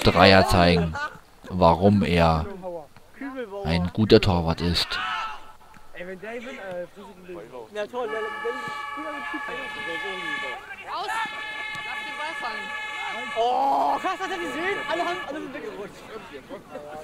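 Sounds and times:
people's voices: 0:00.0 - 0:17.0
loud horn chord: 0:08.1 - 0:15.7.

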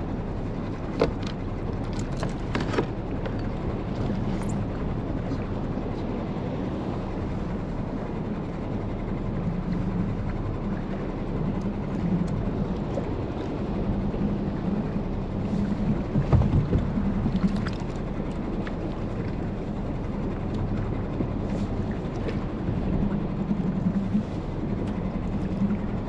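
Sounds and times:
choppy water: 0:00.0 - 0:26.0
low even hum: 0:00.0 - 0:26.0
wind: 0:00.0 - 0:26.0.

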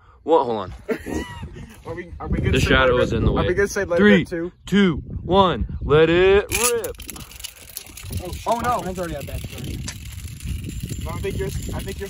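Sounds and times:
spinning tops scraping on asphalt: 0:06.5 - 0:12.0.

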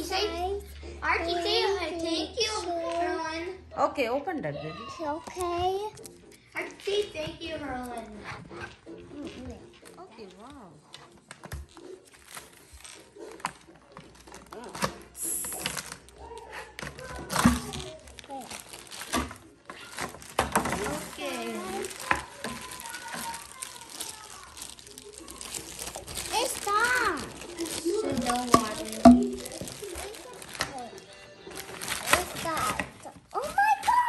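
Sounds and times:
wrapping crinkling and rustling: 0:08.7 - 0:34.0
child exclaiming and chattering: 0:21.6 - 0:24.6.

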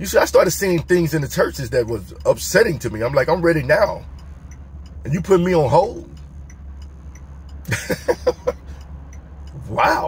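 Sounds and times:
car cabin hum: 0:00.0 - 0:10.0
faint regular ticking: 0:00.0 - 0:10.0
man laughing: 0:07.6 - 0:08.7.

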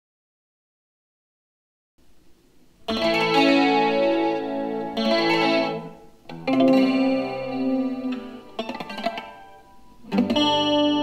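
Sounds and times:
guitar playing jazz chords: 0:02.8 - 0:11.0.

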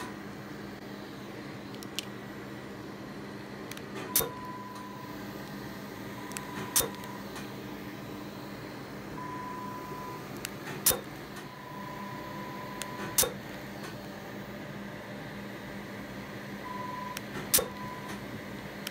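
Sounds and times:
machine hum: 0:00.0 - 0:18.9
beep tone: 0:04.1 - 0:05.1, 0:09.2 - 0:10.2, 0:11.5 - 0:13.2, 0:16.7 - 0:18.2
laser pulse snaps: 0:06.3 - 0:07.2, 0:10.4 - 0:11.1.

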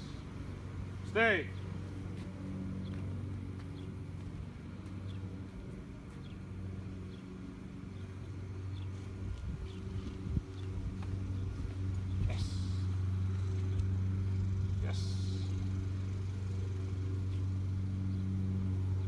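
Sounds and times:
vehicle engine humming: 0:00.0 - 0:19.0.

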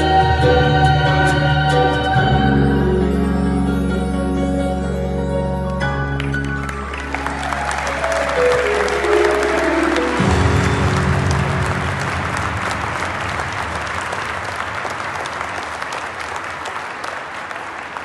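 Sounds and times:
closing music descending notes: 0:00.0 - 0:15.0
large audience applauding: 0:06.0 - 0:18.0.

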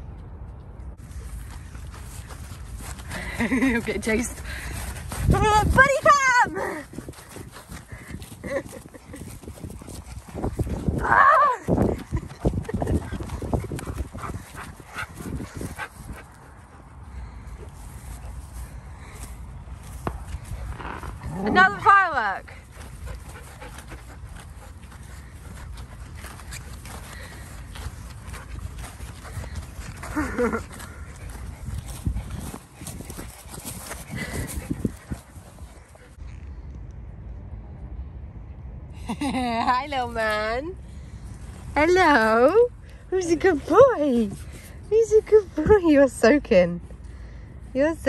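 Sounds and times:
running feet on wet grass: 0:01.0 - 0:36.2.

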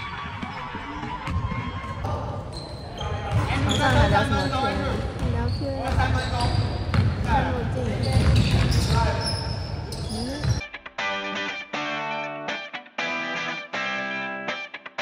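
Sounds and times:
basketball bouncing on wooden floor: 0:03.3 - 0:09.1, 0:10.2 - 0:10.6.

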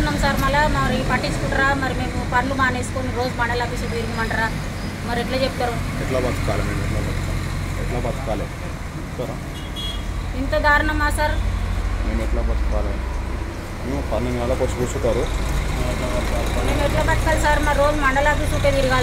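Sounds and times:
woman speaking: 0:00.0 - 0:05.9, 0:10.4 - 0:11.5, 0:16.6 - 0:19.0.

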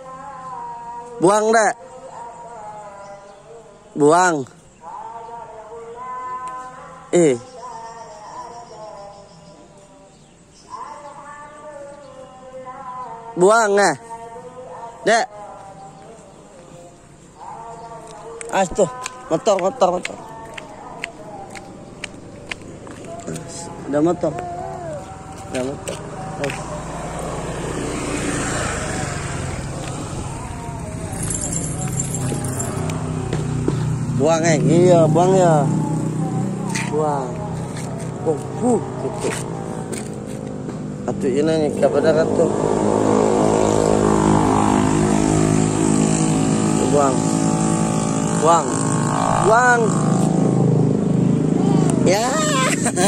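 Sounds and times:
motorcycle passing: 0:10.6 - 0:53.0.

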